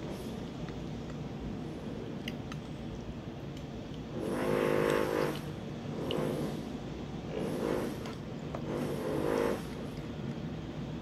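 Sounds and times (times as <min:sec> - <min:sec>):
power tool bursts: 0:04.2 - 0:05.4, 0:08.7 - 0:09.7.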